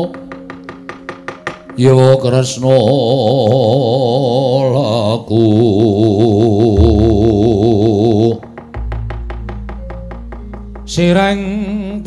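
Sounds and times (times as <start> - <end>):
person singing with vibrato: 1.8 - 8.4
gamelan ensemble: 6.8 - 11.6.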